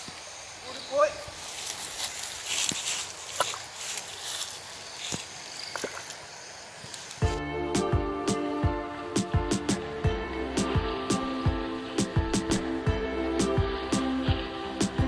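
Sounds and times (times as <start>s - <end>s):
high hiss: 0.0s - 15.0s
background music with struck notes: 7.3s - 15.0s.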